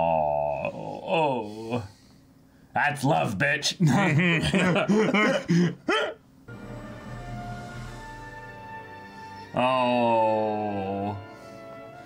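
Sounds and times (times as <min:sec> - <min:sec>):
men chuckling: 0:03.8 - 0:06.2.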